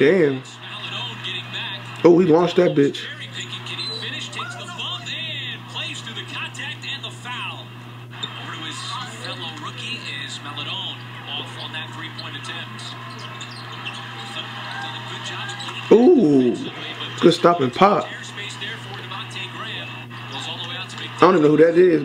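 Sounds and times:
commentators talking: 0.0s - 22.0s
steady low hum: 0.0s - 22.0s
sneakers squeaking on court: 12.1s - 15.9s.

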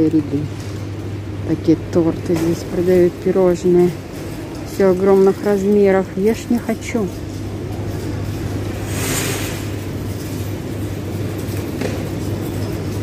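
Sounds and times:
noisy store background: 0.0s - 13.0s
steady low hum: 0.0s - 13.0s.

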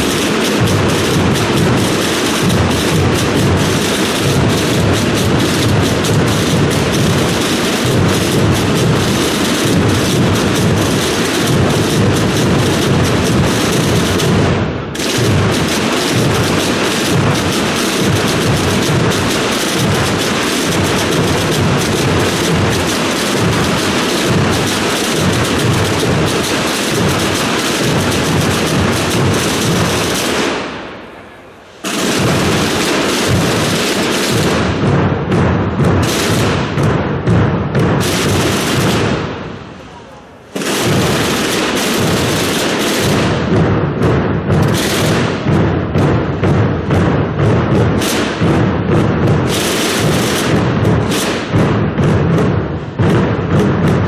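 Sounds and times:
massed processional drums: 0.0s - 54.0s.

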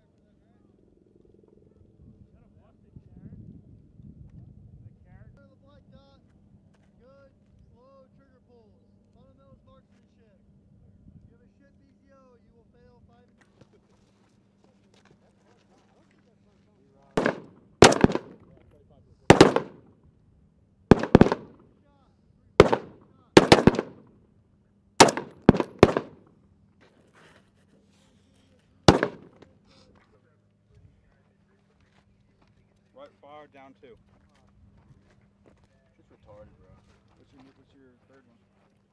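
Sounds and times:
rifle shots: 17.2s - 18.5s, 19.3s - 19.9s, 20.9s - 21.7s, 22.6s - 24.1s, 25.0s - 26.3s, 28.9s - 29.6s.

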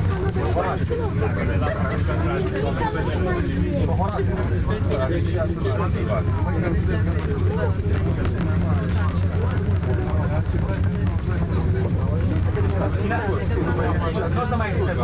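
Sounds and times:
low hum of cable car cabin: 0.0s - 15.0s
people talking indistinctly: 0.0s - 15.0s.

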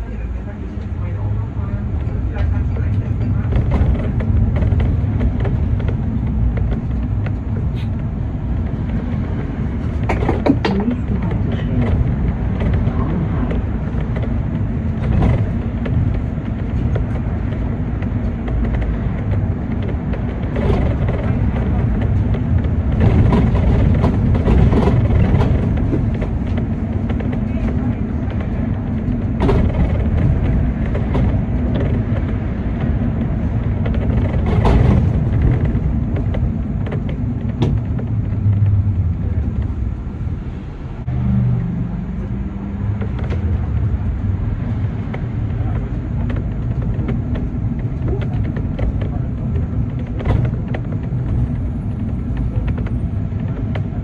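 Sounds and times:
bus engine and tyre rumble: 0.0s - 54.0s
sharp knocks and rattles: 2.3s - 39.9s, 42.2s - 54.0s.

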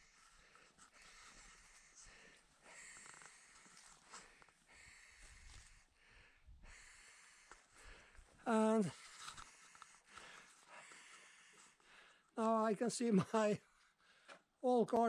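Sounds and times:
faint breath-like noises: 0.0s - 12.6s.

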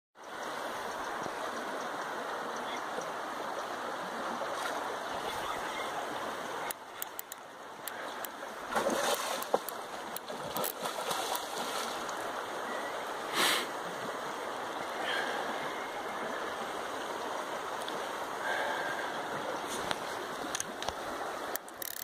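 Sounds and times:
water rushing over rocks: 0.2s - 22.0s
sharp clicks: 6.7s - 8.4s, 20.5s - 22.0s.

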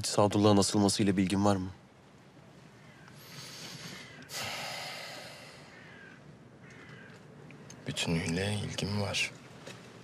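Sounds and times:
man breathing in: 3.2s - 5.7s
man breathing out heavily: 3.2s - 5.8s.

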